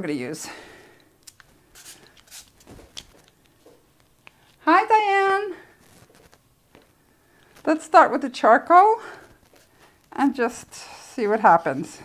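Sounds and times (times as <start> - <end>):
markers rustling: 1.3 - 4.6.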